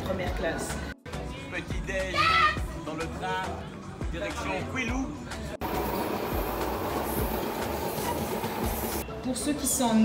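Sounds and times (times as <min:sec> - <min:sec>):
train running noise inside carriage: 0:05.6 - 0:09.0.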